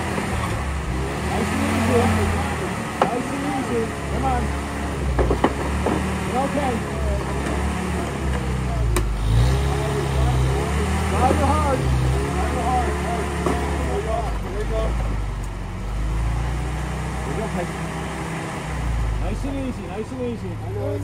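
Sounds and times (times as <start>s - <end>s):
engine running at low speed: 0.0s - 21.0s
indistinct voices talking: 0.0s - 21.0s.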